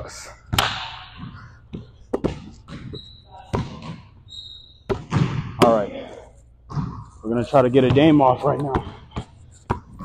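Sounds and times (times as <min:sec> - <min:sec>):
basketball bouncing on hardwood floor: 0:00.5 - 0:04.1, 0:04.9 - 0:05.6, 0:06.7 - 0:07.0, 0:07.9 - 0:10.0
short high-pitched squeaks: 0:02.8 - 0:03.4, 0:04.3 - 0:04.9.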